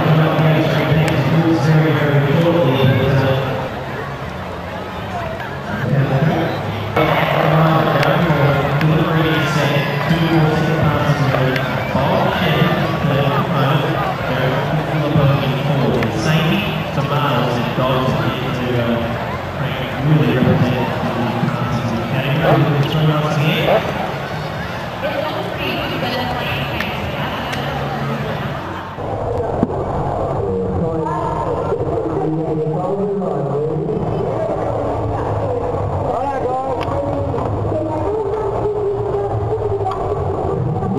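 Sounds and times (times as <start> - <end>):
crowd noise: 0.0 - 40.9
indistinct speech: 0.0 - 40.9.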